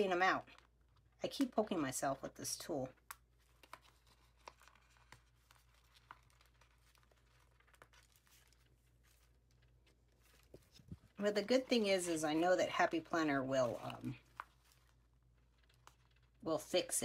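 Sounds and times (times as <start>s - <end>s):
low steady hum: 0.0s - 17.0s
sticker sheet crinkling: 2.9s - 16.9s.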